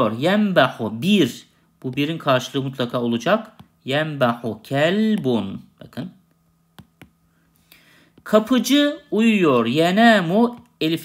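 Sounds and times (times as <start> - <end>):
faint low hum: 0.0 - 11.0
short breath: 7.3 - 8.2.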